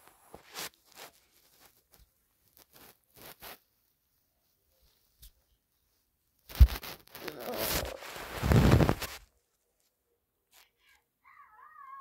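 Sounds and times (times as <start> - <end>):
fabric rubbing on microphone: 0.0 - 4.2, 6.5 - 9.3
bump on microphone: 6.5 - 9.1.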